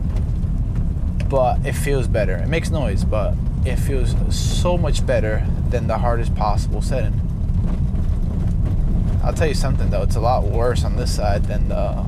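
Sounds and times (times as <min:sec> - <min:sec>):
tyres rumbling on brick road: 0:00.0 - 0:12.0.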